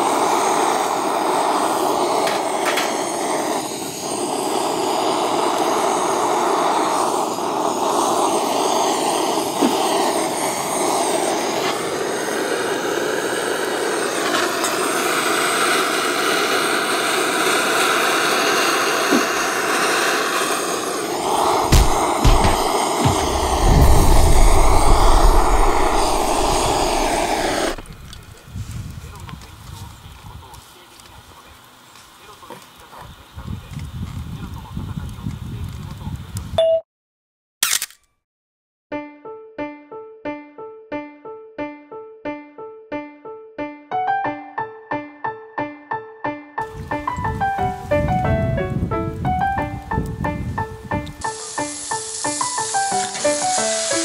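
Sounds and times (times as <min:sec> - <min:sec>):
gas torch burner hissing: 0:00.0 - 0:36.5, 0:46.6 - 0:54.0
low thumps: 0:21.5 - 0:28.2.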